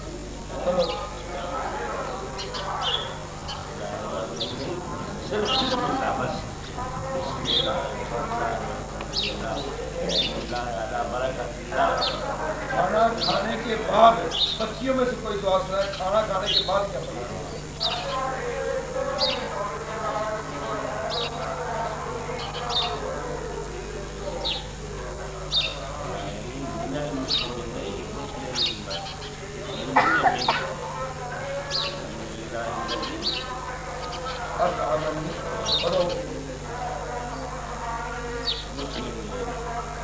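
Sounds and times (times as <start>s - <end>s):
children reciting: 0.0s - 40.0s
faint background voices: 0.0s - 40.0s
steady low hum: 0.0s - 40.0s
bird chirping: 0.6s - 10.8s, 12.8s - 18.4s, 22.4s - 23.0s, 25.4s - 26.4s, 27.1s - 30.6s, 31.7s - 36.3s.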